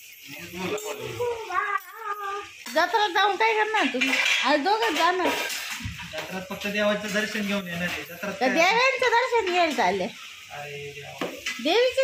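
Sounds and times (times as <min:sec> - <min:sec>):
high-pitched voice: 0:01.2 - 0:02.6
dishes and cutlery clinking: 0:03.6 - 0:09.8.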